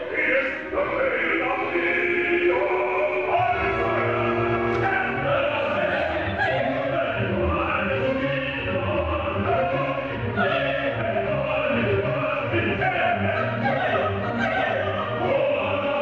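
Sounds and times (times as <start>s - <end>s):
chorus singing: 0.0s - 16.0s
operatic singing: 0.0s - 16.0s
orchestra playing: 0.0s - 16.0s.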